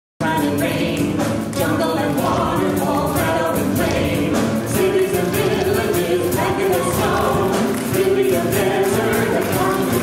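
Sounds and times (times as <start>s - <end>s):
backing music with steady beat: 0.2s - 10.0s
choir singing: 0.2s - 10.0s.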